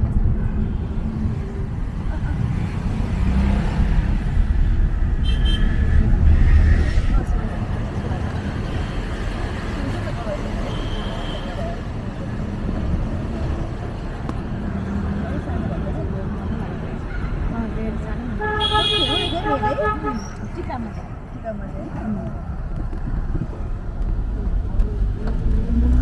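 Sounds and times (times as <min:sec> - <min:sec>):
car road noise rumble: 0:00.0 - 0:26.0
surrounding traffic: 0:00.0 - 0:26.0.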